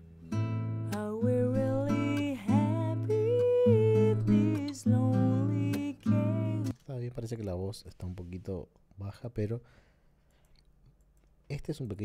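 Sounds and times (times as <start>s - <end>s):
acoustic guitar: 0.0s - 6.8s
person singing: 0.9s - 6.8s.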